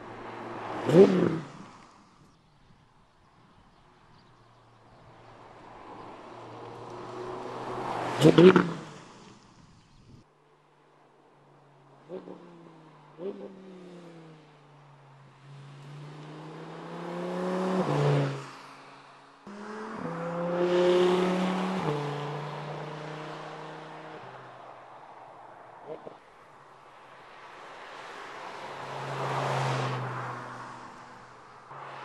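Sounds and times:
car passing by: 0.0 - 2.3, 5.2 - 10.0, 12.8 - 32.0.

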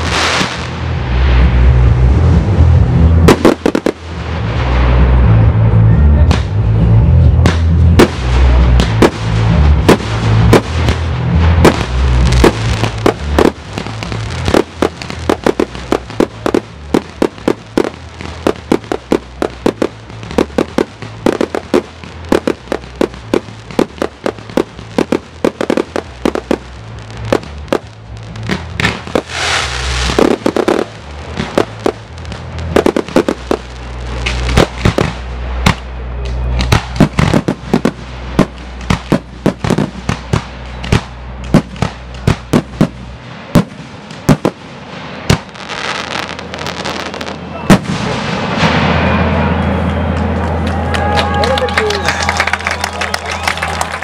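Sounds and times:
fireworks bangs: 0.0 - 54.0.

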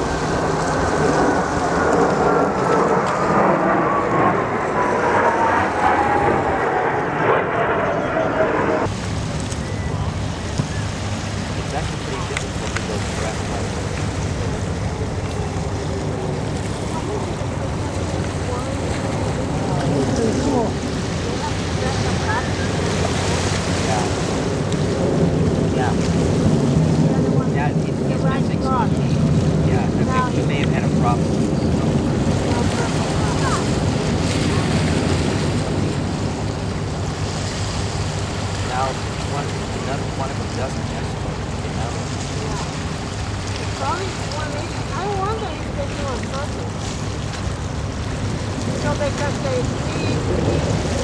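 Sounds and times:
distant jet engines rushing: 0.0 - 51.0
wind on microphone: 0.0 - 51.0
faint voices: 9.6 - 24.5.

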